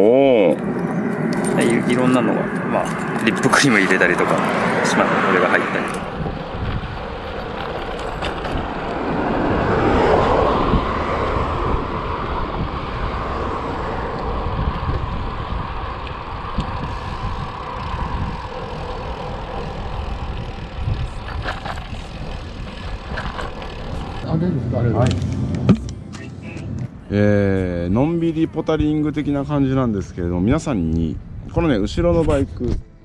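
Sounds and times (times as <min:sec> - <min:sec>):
bike tyres on asphalt: 0:00.0 - 0:26.0
wind rushing over microphone: 0:00.0 - 0:33.0.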